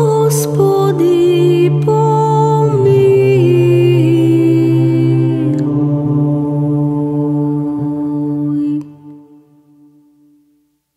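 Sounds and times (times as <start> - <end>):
low drone: 0.0 - 10.2
choir chanting held chord: 0.0 - 10.3.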